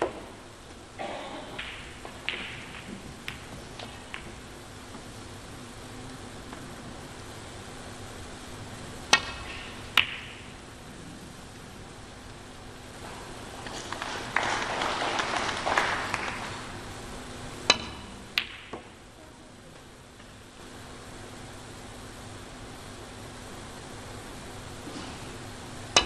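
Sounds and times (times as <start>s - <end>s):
snooker balls clicking: 0.0s - 7.5s, 9.0s - 19.1s
audience applause: 13.6s - 16.8s.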